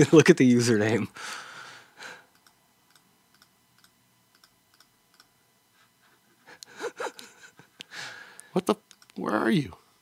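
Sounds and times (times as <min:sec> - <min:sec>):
sharp click: 0:02.4 - 0:05.3, 0:08.9 - 0:09.2.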